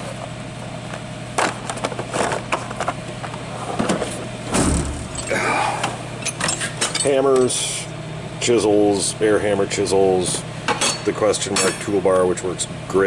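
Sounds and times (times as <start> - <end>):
drawer shutting with heavy thud: 3.8 - 5.2.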